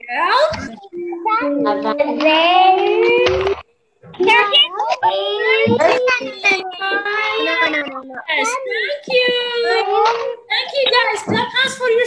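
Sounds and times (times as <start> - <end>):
children singing sing-song tones: 0.6 - 3.6.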